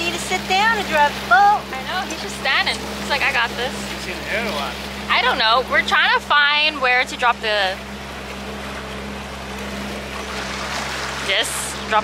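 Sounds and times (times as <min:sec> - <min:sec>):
motorboat engine humming: 0:00.0 - 0:12.0.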